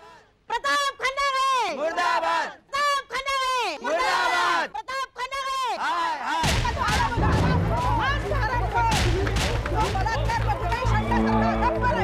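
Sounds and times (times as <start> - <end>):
heavy boom: 6.6 - 9.6
low rumbling dramatic music: 7.1 - 9.7.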